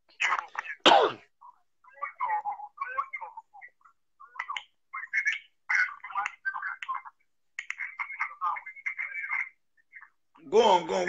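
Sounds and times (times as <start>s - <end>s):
choppy voice over video call: 0.0s - 11.0s.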